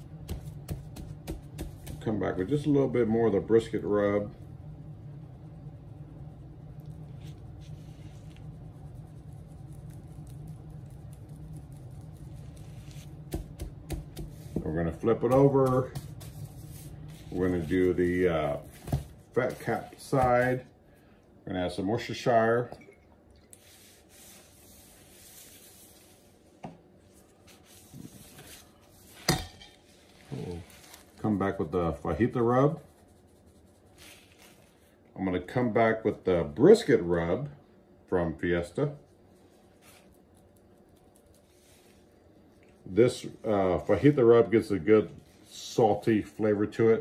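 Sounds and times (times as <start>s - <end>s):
steady low hum: 0.0s - 47.0s
gloved hand rubbing meat: 7.0s - 20.6s, 23.6s - 26.4s, 29.8s - 35.0s, 39.1s - 42.2s
seasoning sprinkling ticks: 8.5s - 14.3s.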